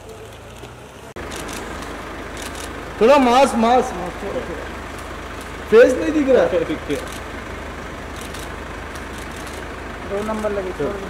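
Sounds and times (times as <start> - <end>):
engine running low rumble: 0.0 - 11.0.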